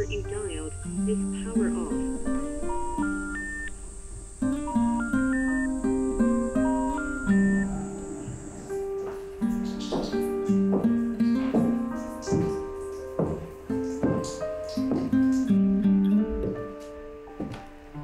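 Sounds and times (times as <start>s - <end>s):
plucked acoustic guitar melody: 0.0s - 18.0s.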